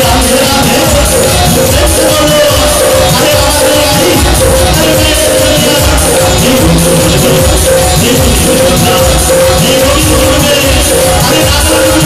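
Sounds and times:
cymbals: 0:00.0 - 0:12.0
person singing devotional music: 0:00.0 - 0:12.0
steady drumbeat: 0:00.0 - 0:12.0.

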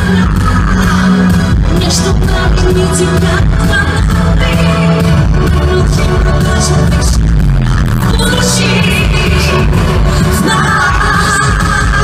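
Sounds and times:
heavy bass: 0:00.0 - 0:12.0
live pop song over loudspeakers: 0:00.0 - 0:12.0
woman singing: 0:00.0 - 0:12.0.

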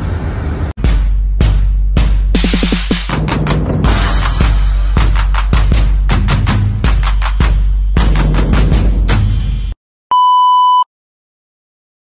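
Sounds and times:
high-pitched test-tone beep: 0:10.1 - 0:10.9.

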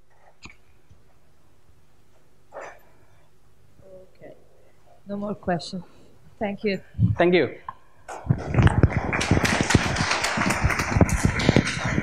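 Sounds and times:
audience applauding: 0:08.4 - 0:12.0.

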